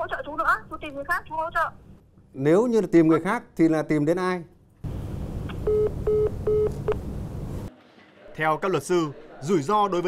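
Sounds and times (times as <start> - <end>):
telephone busy signal beeps: 5.6 - 6.8.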